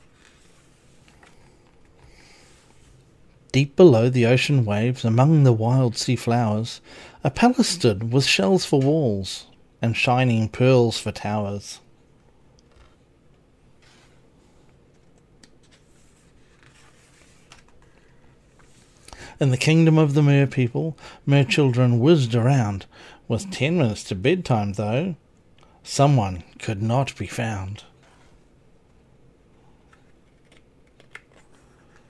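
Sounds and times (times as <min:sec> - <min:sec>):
paper page turning: 0:14.9 - 0:19.1.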